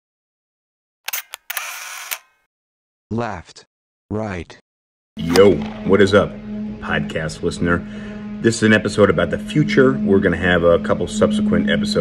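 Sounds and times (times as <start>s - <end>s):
camera shutter clicks: 1.1s - 2.4s.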